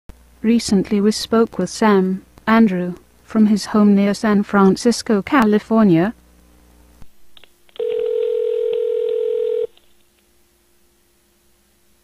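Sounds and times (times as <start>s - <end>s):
phone line click: 7.7s - 9.8s
telephone ringback tone: 7.8s - 9.7s.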